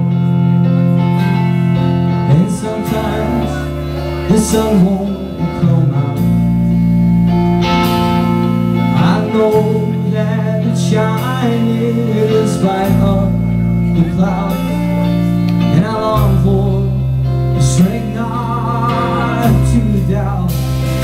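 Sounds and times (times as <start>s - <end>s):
electric guitars: 0.0s - 21.0s
sustained bass notes: 0.0s - 21.0s.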